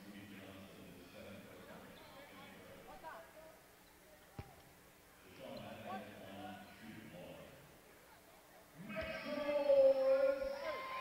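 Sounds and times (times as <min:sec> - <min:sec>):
faint voices: 0:00.3 - 0:11.0.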